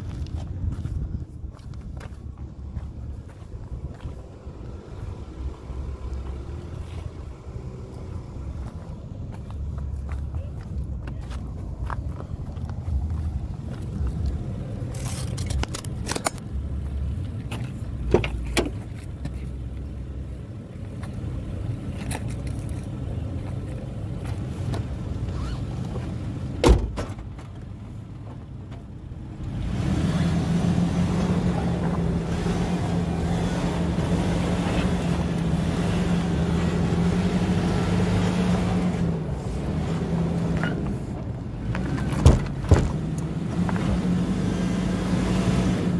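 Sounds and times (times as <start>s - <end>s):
suv engine droning: 0.0s - 45.9s
car door shutting: 26.6s - 27.4s, 42.1s - 43.0s.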